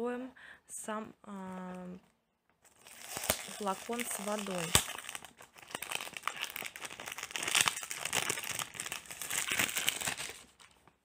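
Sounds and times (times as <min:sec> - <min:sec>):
plastic wrap crinkling: 0:02.6 - 0:11.0.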